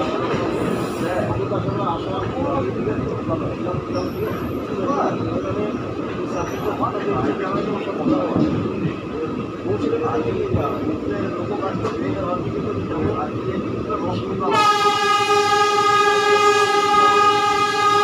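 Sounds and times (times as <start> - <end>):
train wheels rumbling on rail: 0.0 - 18.0
high wheel squeals: 3.9 - 4.6, 6.3 - 6.9.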